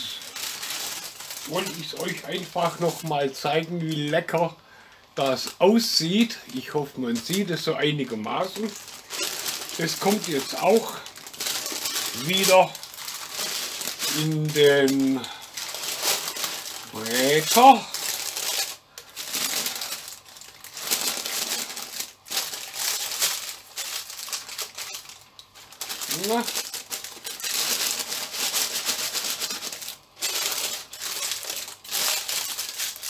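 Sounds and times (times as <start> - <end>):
baking paper crinkling: 0.0 - 33.0.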